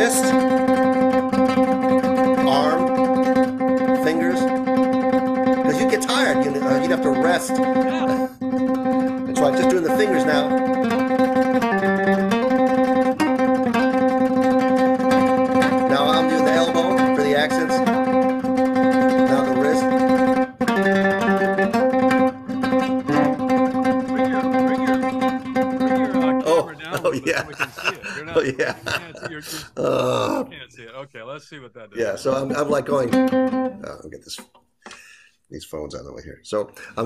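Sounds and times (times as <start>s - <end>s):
classical guitar fingerpicking: 0.1s - 26.5s, 32.5s - 33.8s
person laughing: 7.8s - 8.4s, 24.0s - 33.0s.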